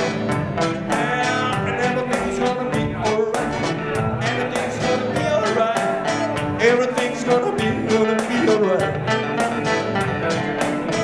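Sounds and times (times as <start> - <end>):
strummed acoustic guitar: 0.0 - 11.0
people singing: 0.9 - 9.0.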